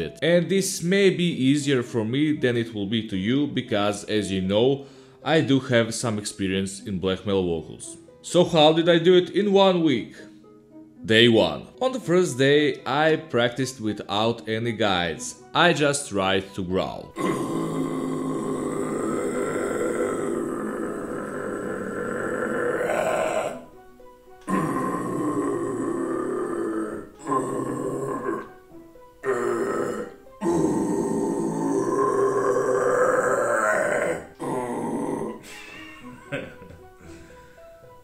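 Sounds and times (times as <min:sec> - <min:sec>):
breathing: 0:04.8 - 0:05.2, 0:37.0 - 0:37.7
man growling: 0:17.2 - 0:23.7, 0:24.4 - 0:28.6, 0:29.2 - 0:35.4.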